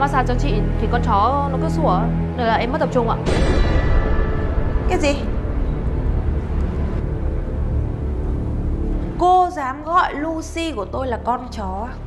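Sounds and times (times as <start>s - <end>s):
low rumbling background music: 0.0s - 12.0s.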